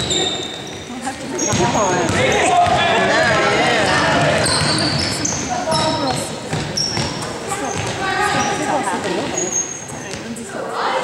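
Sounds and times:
voices shouting with echo: 0.0 - 9.9
sneakers squeaking: 0.0 - 10.5.

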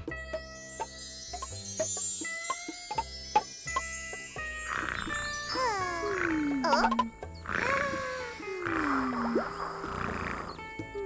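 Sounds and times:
light background music: 0.0 - 11.0
cartoon character humming: 4.7 - 10.5.

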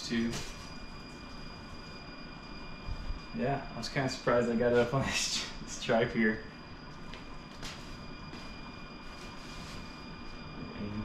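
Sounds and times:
faint high whine: 0.0 - 11.0
person moving scuffs and knocks: 0.2 - 0.8, 7.0 - 10.0.

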